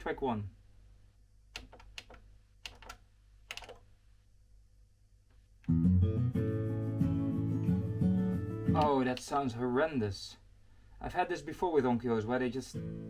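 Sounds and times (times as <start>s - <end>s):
distorted guitar music: 5.7s - 9.0s, 12.8s - 13.0s.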